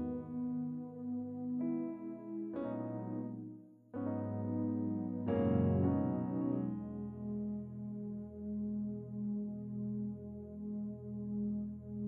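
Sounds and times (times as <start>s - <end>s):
slow keyboard chords: 0.0s - 12.0s.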